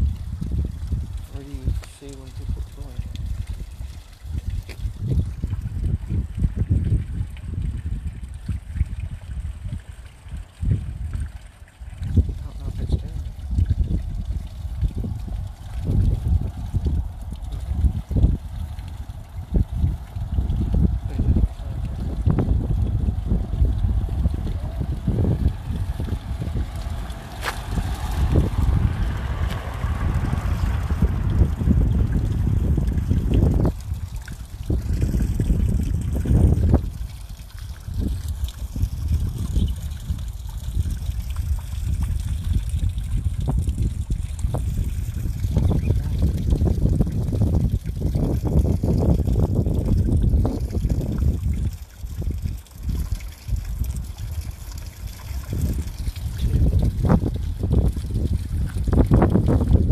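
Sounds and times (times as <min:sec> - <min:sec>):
fountain trickling and splashing: 0:00.0 - 0:59.9
heavy low rumble: 0:00.0 - 0:59.9.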